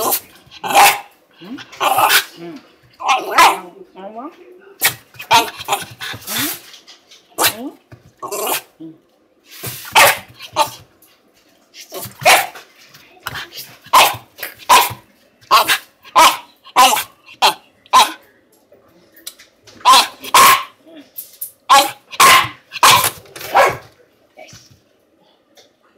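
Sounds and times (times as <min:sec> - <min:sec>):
dog barking: 0:00.6 - 0:01.1, 0:03.0 - 0:03.7, 0:05.2 - 0:05.8, 0:10.0 - 0:10.8, 0:12.2 - 0:12.6, 0:13.9 - 0:18.2, 0:19.8 - 0:20.8, 0:21.7 - 0:23.9.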